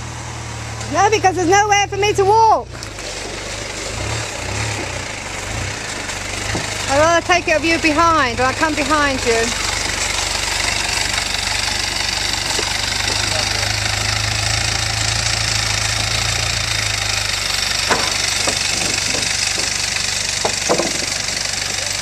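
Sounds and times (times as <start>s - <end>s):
vehicle engine running low: 0.0s - 22.0s
short knocks: 17.8s - 21.5s.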